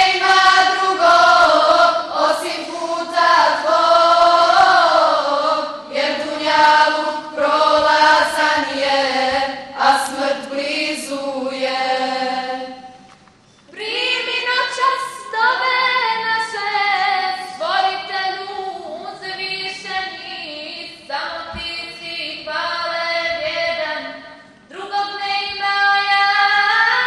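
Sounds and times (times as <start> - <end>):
women singing unaccompanied: 0.0 - 13.0, 13.7 - 27.0.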